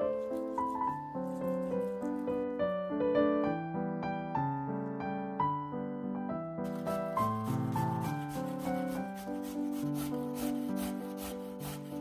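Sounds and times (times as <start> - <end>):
soft piano music: 0.0 - 12.0
carrot grated on metal grater: 6.7 - 12.0.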